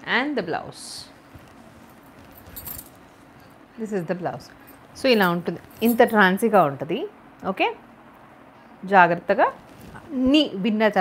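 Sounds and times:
fabric rustling: 1.2s - 3.6s, 4.6s - 6.7s, 9.5s - 10.3s
bangles jingling: 1.8s - 3.0s, 4.7s - 6.7s.

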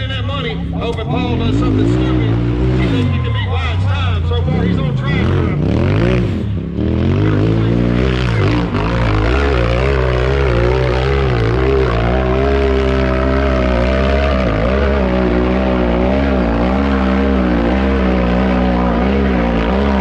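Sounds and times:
buggy engine revving: 0.0s - 20.0s.

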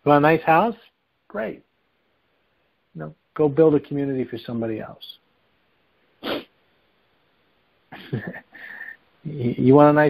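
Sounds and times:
man breathing on telephone line: 8.5s - 9.1s.

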